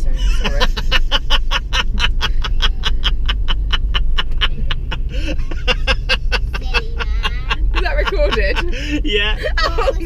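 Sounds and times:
car engine and road rumble: 0.0s - 10.0s
person laughing in breathy bursts: 0.2s - 9.8s.

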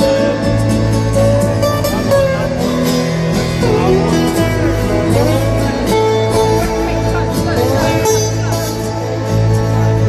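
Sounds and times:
bending guitar notes: 0.0s - 10.0s
live rock band over speakers: 0.0s - 10.0s.

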